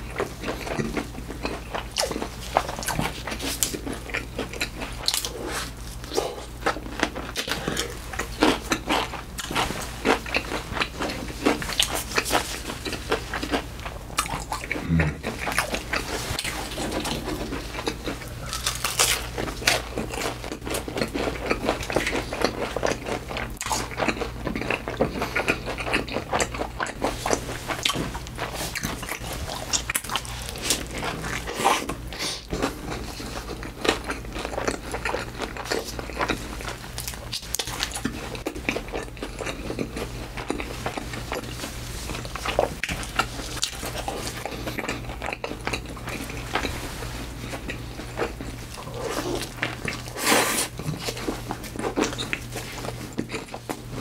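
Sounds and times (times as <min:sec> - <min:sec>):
chewing crunchy food: 0:00.0 - 0:54.0.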